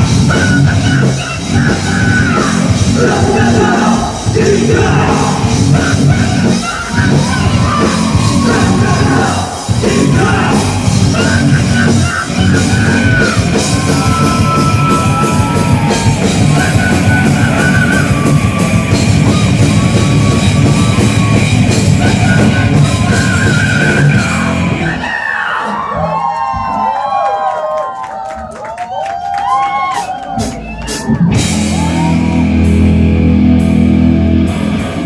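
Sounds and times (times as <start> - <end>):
heavy metal band playing live: 0.0 - 26.4, 30.3 - 35.0
people yelling: 0.5 - 32.8.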